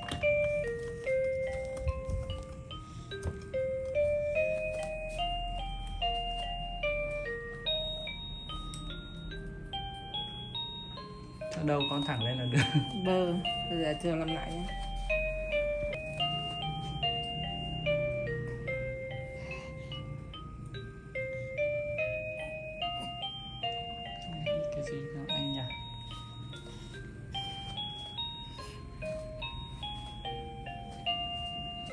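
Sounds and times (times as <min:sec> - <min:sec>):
music box electronic lullaby: 0:00.0 - 0:31.9.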